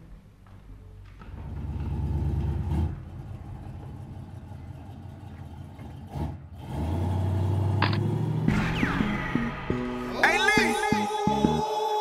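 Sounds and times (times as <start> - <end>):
car engine idling: 1.1 - 10.8.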